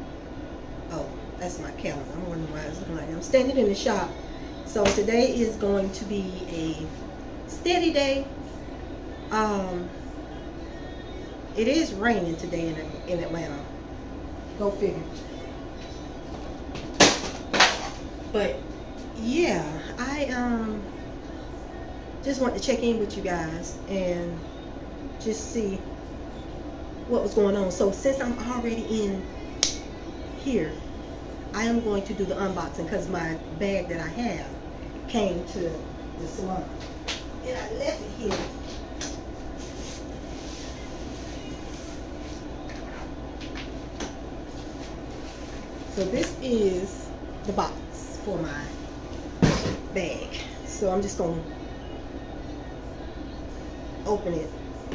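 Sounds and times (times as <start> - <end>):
low room hum: 0.0 - 54.9.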